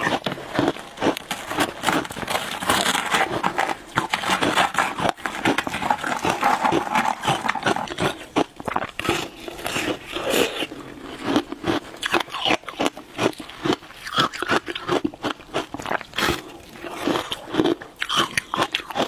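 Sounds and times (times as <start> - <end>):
ice being chewed: 0.0 - 19.0
ice cracking and crunching: 0.0 - 19.0.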